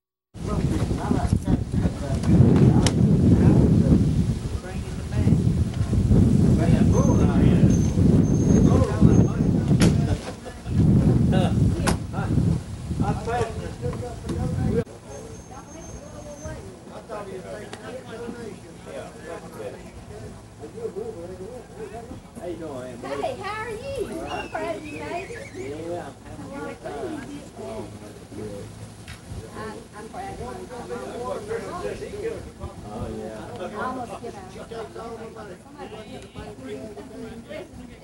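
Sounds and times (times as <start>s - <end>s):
people talking: 0.4s - 5.5s, 6.4s - 38.0s
indistinct chatter: 0.4s - 38.0s.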